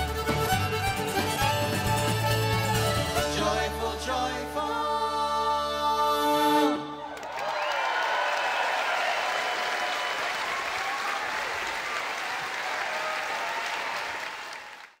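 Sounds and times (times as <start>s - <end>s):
audience applauding: 7.0s - 15.0s
voices cheering: 7.0s - 15.0s.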